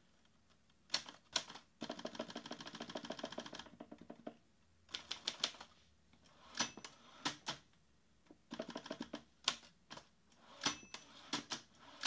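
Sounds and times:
typewriter bell ring: 6.6 - 7.0, 10.6 - 11.3.

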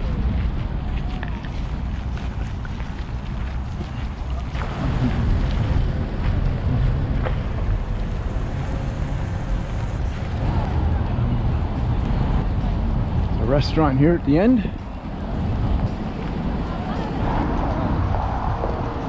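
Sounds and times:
faint street and park ambience: 0.0 - 19.0
wind buffeting microphone: 0.0 - 19.0.

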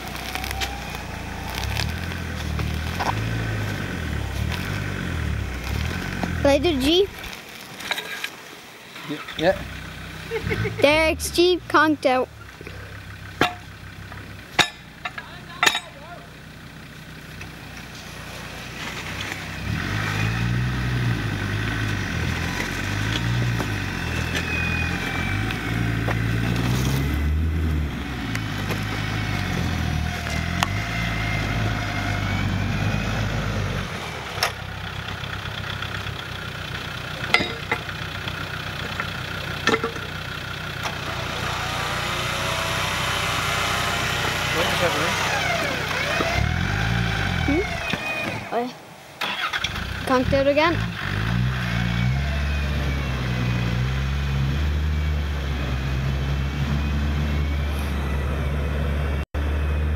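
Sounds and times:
low engine hum: 0.0 - 7.7, 8.3 - 59.9
engine revving in mud: 0.0 - 8.3, 8.9 - 59.9.

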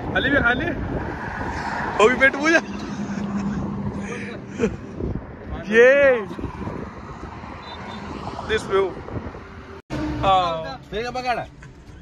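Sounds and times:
wind on microphone: 0.0 - 2.0, 4.6 - 9.7
highway traffic passing: 0.0 - 12.0.

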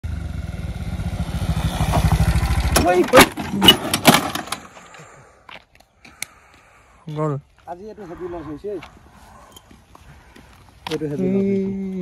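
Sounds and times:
motorcycle engine running: 0.0 - 3.2.

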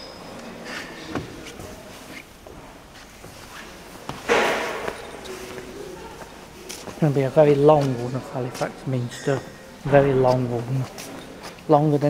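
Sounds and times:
footsteps in echoing church: 0.0 - 12.0.

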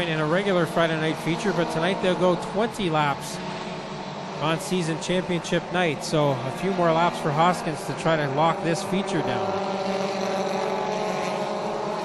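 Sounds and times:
race car engines droning: 0.0 - 12.0.

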